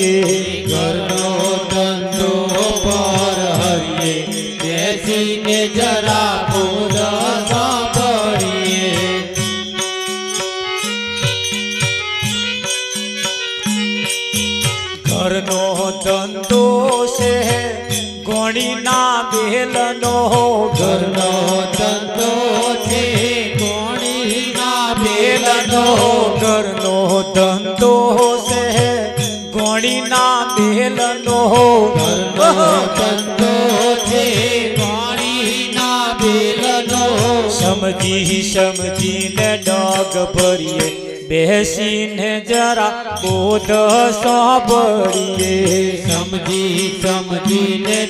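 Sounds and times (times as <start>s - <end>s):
man singing: 0.0s - 9.9s, 15.0s - 48.0s
harmonium chords: 0.0s - 48.0s
percussion strokes: 0.0s - 48.0s.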